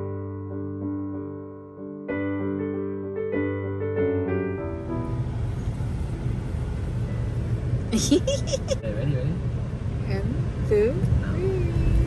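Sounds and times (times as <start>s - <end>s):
car engine rumble inside cabin: 4.6s - 12.0s.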